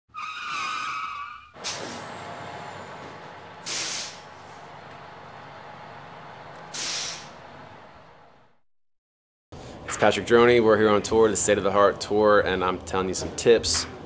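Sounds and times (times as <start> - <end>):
air-brake hisses: 1.6 - 2.2, 3.6 - 4.4, 6.6 - 7.4
bus engine running: 1.6 - 8.6.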